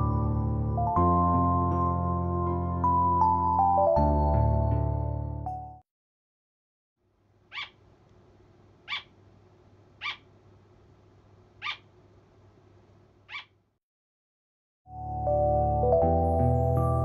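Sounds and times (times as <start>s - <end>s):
faint room noise: 7.0s - 13.8s
small animal high calls: 7.5s - 7.8s, 8.8s - 9.1s, 10.0s - 10.3s, 11.6s - 11.9s, 13.3s - 13.6s.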